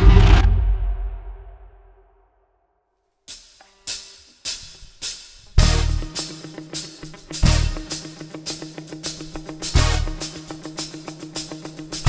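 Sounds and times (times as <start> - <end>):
drum kit cymbal and drum hits: 3.3 - 12.0.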